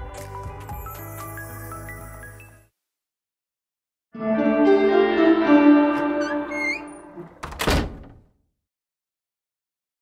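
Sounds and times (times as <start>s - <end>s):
held musical chord: 4.2s - 7.3s.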